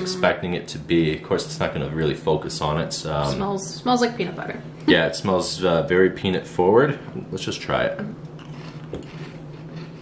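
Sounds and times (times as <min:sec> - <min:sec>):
chewing crunchy snacks: 0:08.2 - 0:10.0.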